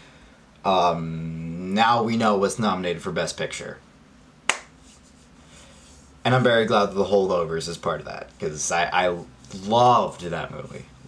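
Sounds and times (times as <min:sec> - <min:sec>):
sharp hand-made click: 0:04.5 - 0:04.8.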